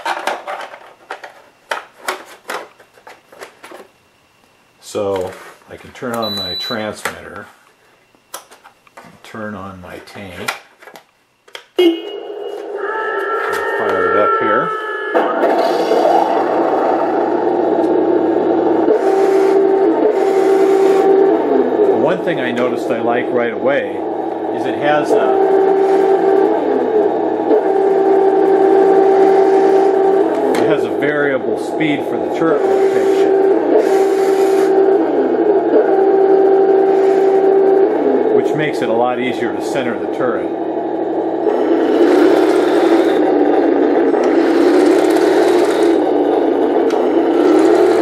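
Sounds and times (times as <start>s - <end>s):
turret motor whine: 11.7s - 48.0s
simulated engine from small speaker: 13.6s - 48.0s.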